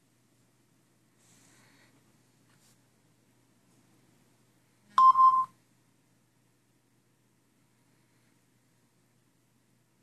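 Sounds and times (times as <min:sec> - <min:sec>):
short electronic beep: 0:05.0 - 0:05.5.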